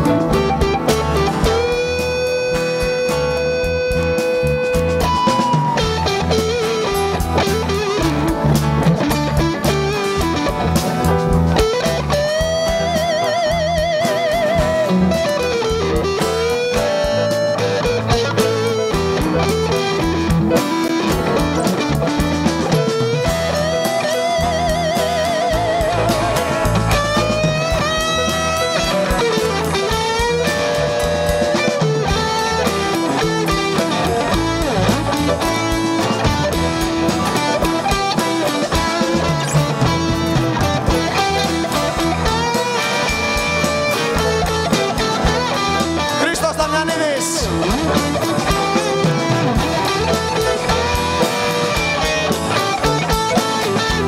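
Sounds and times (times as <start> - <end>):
drum beat: 0.0 - 54.0
guitars strummed and picked: 0.0 - 54.0.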